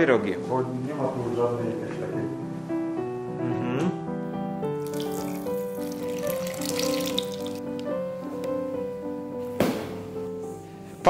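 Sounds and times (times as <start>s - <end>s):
background music: 0.0s - 11.0s
water splashing into a steel bowl: 4.8s - 7.9s.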